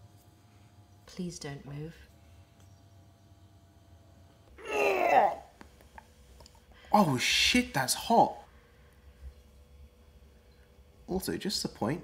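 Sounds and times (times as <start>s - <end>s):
man's wordless cry: 4.6s - 5.5s.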